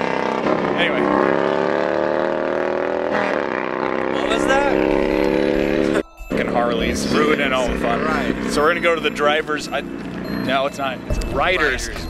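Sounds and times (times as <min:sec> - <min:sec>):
motorcycle engines running: 0:00.0 - 0:12.0.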